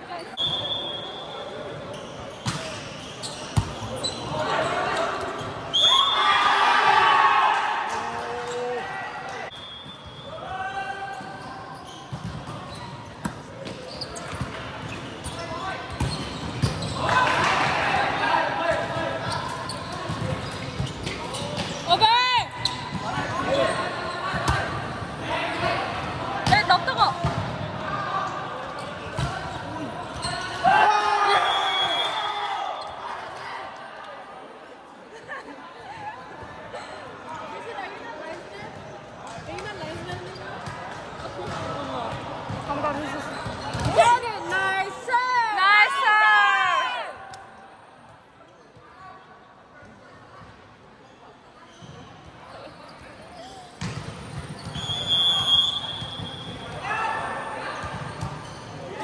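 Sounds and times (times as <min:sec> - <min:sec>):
people shouting and cheering: 0:05.8 - 0:09.5, 0:30.3 - 0:34.2, 0:43.9 - 0:47.3.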